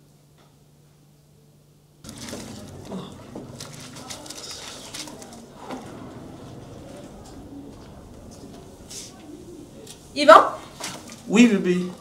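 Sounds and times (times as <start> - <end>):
pigeons cooing: 4.3 - 10.8.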